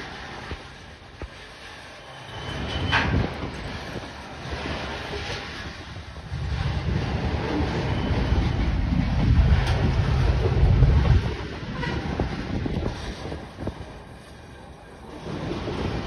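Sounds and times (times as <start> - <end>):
freight train cars rolling on rails: 0.0 - 16.0
wind buffeting microphone: 0.0 - 16.0.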